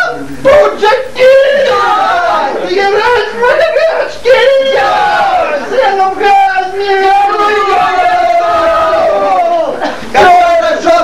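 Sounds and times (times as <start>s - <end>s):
voices shouting long cries: 0.0s - 11.0s.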